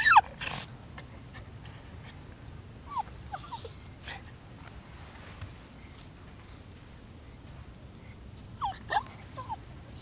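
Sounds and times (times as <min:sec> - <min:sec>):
dog whining: 0:00.0 - 0:00.7, 0:02.1 - 0:04.0, 0:06.8 - 0:10.0.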